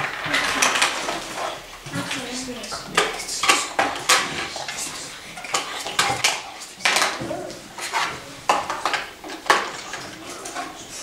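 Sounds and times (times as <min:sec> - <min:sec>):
plastic toy pieces clacking: 0:00.0 - 0:01.5.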